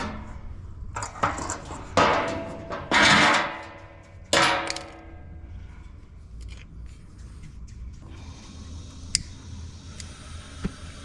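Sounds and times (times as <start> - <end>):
metal clangs: 0.0 - 5.4.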